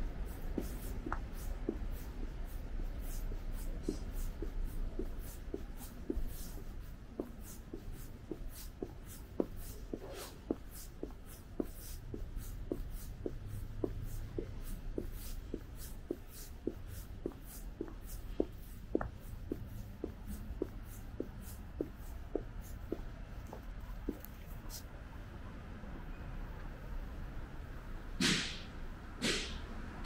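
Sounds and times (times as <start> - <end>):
walking footsteps: 0.2 - 24.9.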